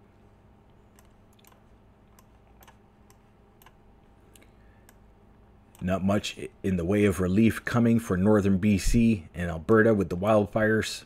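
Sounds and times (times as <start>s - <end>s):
low steady hum: 0.0s - 11.0s
computer mouse clicks: 0.9s - 5.1s.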